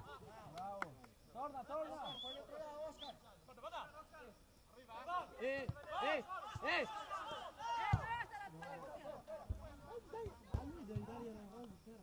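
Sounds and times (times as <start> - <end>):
men shouting: 5.9 - 10.4.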